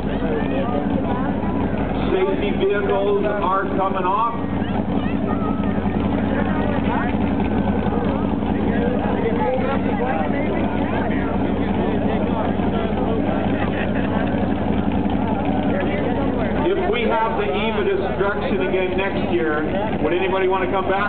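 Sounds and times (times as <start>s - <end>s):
spectators chattering: 0.0s - 21.0s
vehicle engines droning: 0.0s - 21.0s.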